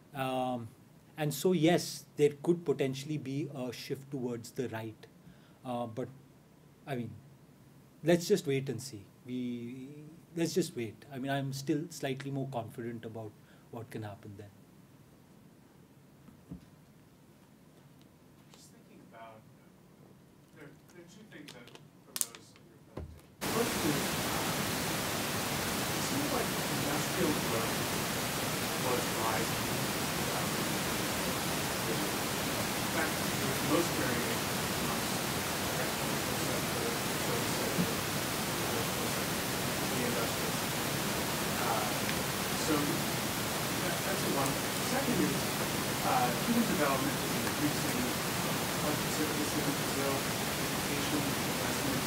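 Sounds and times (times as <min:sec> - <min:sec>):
loud recording hiss: 0:00.0 - 0:52.0.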